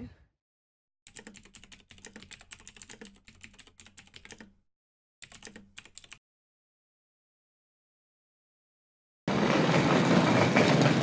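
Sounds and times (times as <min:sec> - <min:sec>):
computer keyboard typing: 0:01.1 - 0:04.6, 0:05.2 - 0:06.2.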